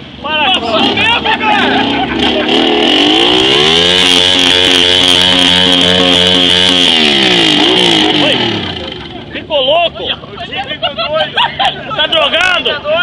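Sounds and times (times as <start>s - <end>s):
motorcycle engine revving: 0.6s - 9.4s.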